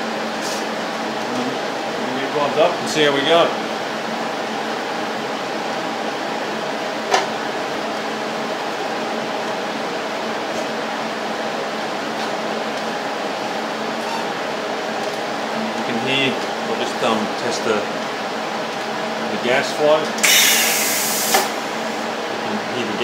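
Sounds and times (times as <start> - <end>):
cooling fan humming: 0.0 - 23.0.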